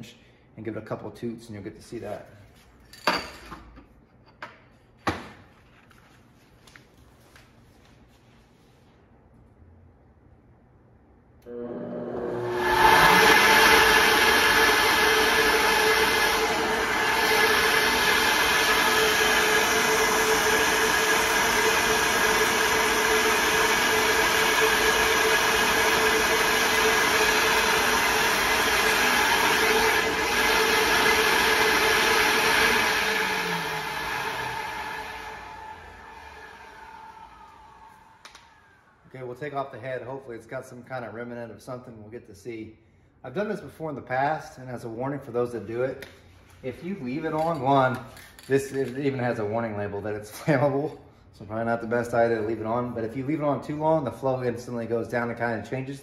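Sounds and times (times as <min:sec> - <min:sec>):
vacuum motors whining: 0:11.4 - 0:38.9.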